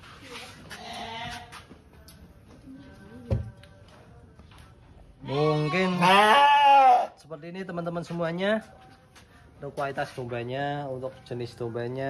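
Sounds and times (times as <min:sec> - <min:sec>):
sheep bleating: 0:00.8 - 0:01.7, 0:05.2 - 0:07.2.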